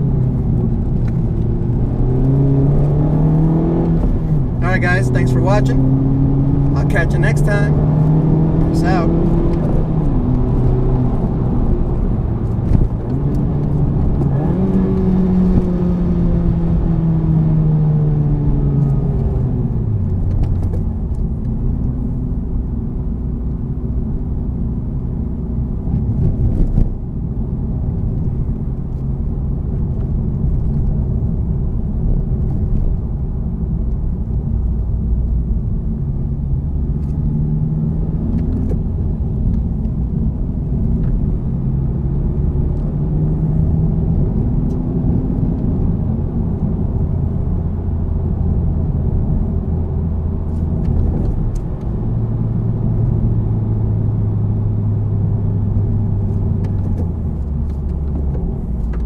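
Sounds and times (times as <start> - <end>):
car engine: 0.0 - 59.0
road noise inside car cabin: 0.0 - 59.0.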